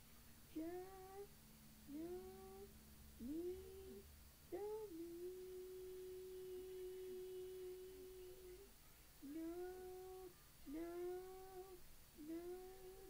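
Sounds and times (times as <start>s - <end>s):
child humming: 0.6s - 1.3s, 1.9s - 13.0s.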